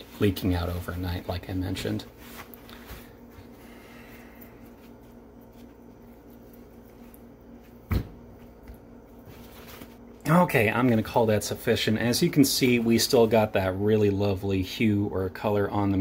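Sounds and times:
paper towel rustling: 0.0 - 14.3
steady low hum: 0.0 - 16.0.

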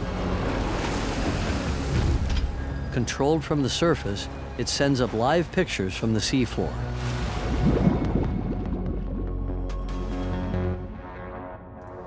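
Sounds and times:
sea water rushing and splashing: 0.0 - 10.0
low rumble: 6.8 - 11.0.

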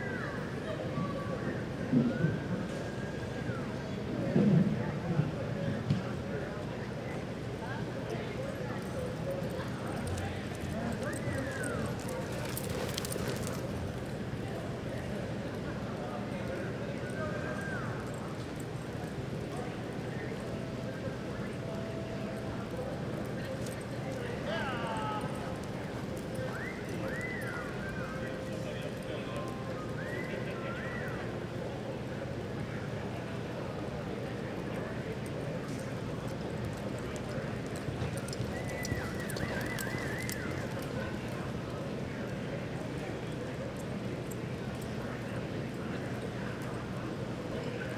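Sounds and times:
murmur of spectators' voices: 0.0 - 47.9
horse hoofbeats on dirt: 36.3 - 41.5
high whistle-like calls: 38.6 - 40.6.

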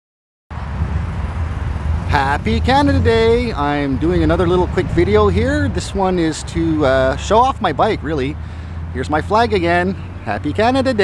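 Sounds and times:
wind buffeting microphone: 0.6 - 7.2.

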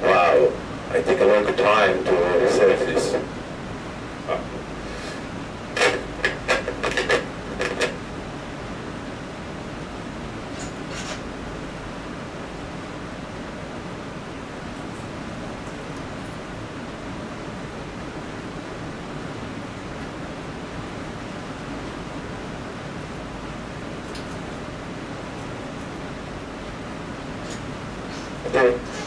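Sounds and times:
steady hiss: 0.0 - 29.0.

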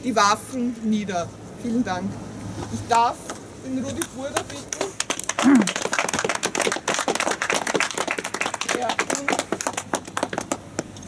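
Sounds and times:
small group applauding: 4.0 - 11.0.

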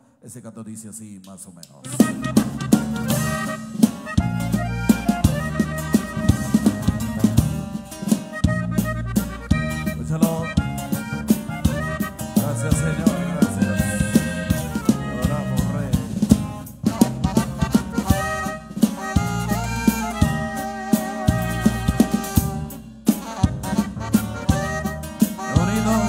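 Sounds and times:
drum kit: 1.6 - 26.0
saxophone: 1.9 - 7.7, 8.3 - 26.0
electric bass: 1.9 - 26.0.

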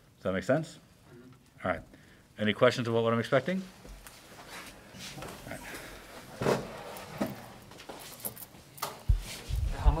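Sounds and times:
heavy low thuds: 9.1 - 10.0.

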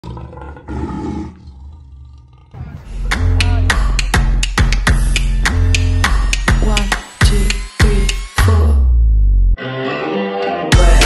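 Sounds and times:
lion roaring: 0.0 - 4.0.

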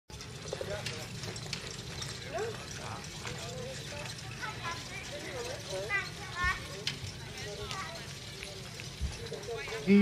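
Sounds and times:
faint voices talking: 0.1 - 10.0
low outdoor rumble: 0.1 - 10.0.

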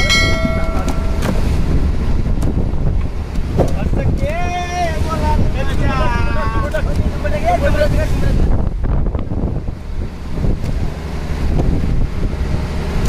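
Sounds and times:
held even tone: 0.0 - 1.6
steady low rumble: 0.0 - 13.0.

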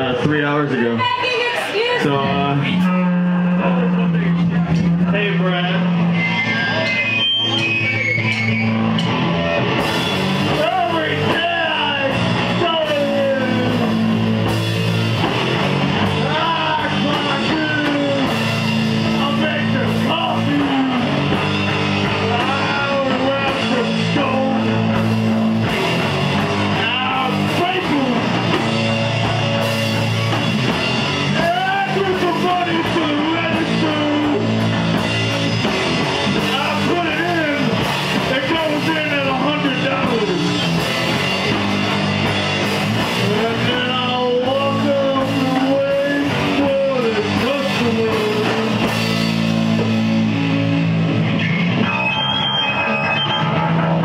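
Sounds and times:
live heavy rock band: 0.0 - 54.0.

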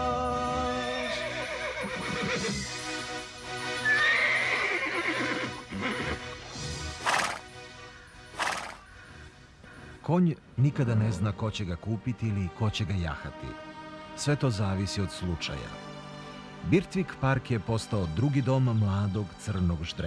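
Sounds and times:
background music: 0.0 - 20.0
cartoon horse whinnying: 3.8 - 6.3, 7.0 - 7.4, 8.4 - 8.8
short sharp noise rushes: 8.3 - 8.8.

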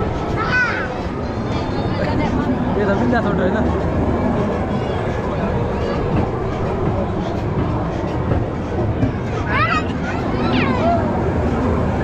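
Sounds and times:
ride train wheels rumbling: 0.0 - 12.0.

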